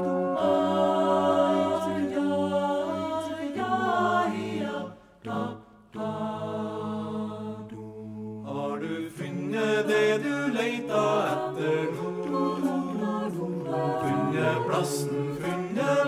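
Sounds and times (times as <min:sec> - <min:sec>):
a cappella choir singing: 0:00.0 - 0:16.0.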